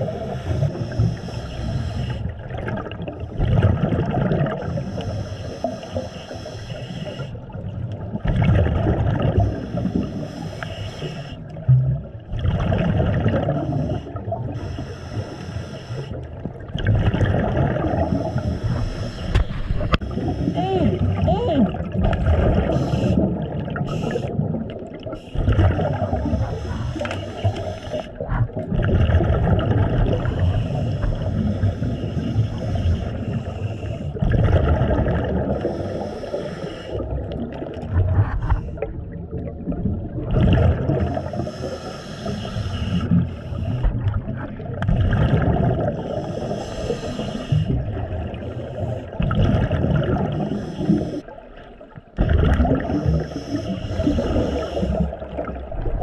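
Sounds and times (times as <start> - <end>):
scuba regulator breathing underwater: 0.0 - 7.7, 8.6 - 11.6, 12.9 - 16.5, 17.4 - 28.6, 29.2 - 44.6, 45.2 - 51.4, 52.2 - 55.6.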